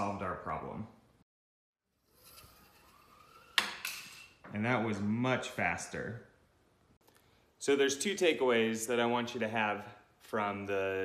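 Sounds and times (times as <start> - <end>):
toy zipline whir: 2.0 - 4.1.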